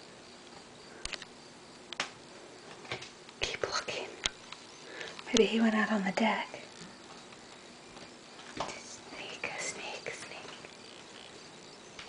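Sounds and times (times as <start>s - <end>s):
person whispering: 3.4s - 4.2s, 8.7s - 10.7s.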